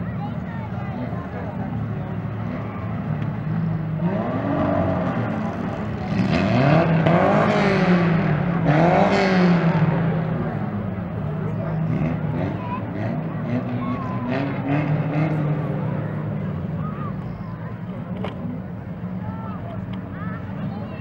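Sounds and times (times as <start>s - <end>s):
race car engines droning: 0.0s - 21.0s
spectators talking: 0.0s - 21.0s.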